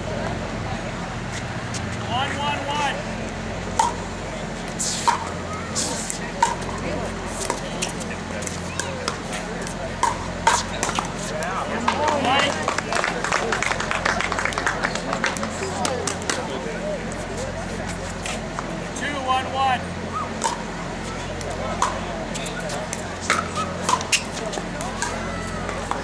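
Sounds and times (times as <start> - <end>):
paddles hitting plastic ball: 8.4 - 11.1.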